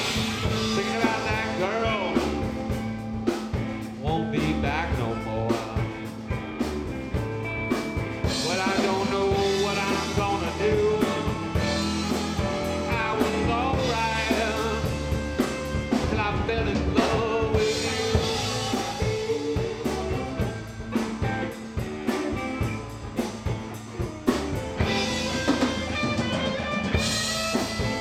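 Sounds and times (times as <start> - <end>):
bass guitar: 0.0 - 28.0
drum kit: 0.0 - 28.0
electric guitar: 0.0 - 28.0.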